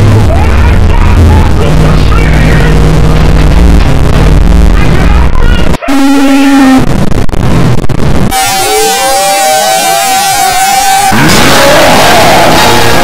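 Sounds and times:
distorted noise and music: 0.0 - 13.0
harsh noise with rising sweep: 6.2 - 13.0.

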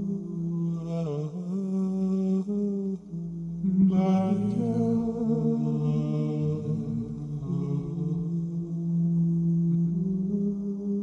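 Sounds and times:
man humming held notes: 0.0 - 11.0.

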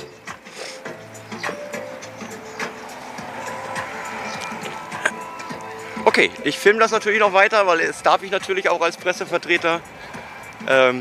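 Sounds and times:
faint background music: 0.0 - 11.0
street noise: 0.0 - 11.0.

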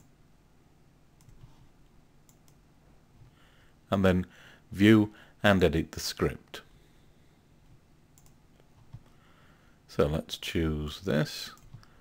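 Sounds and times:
faint computer mouse clicks: 1.2 - 1.5, 2.3 - 2.6, 8.2 - 9.1.

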